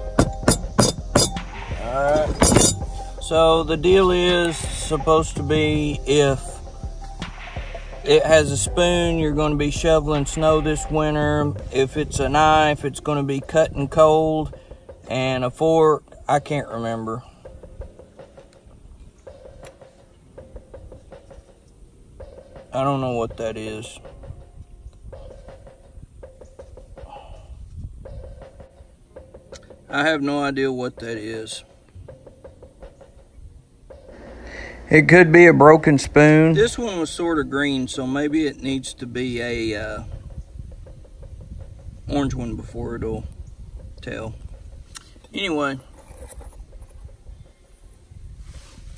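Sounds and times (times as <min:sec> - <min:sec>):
low outdoor rumble: 0:07.7 - 0:13.1, 0:34.0 - 0:45.9.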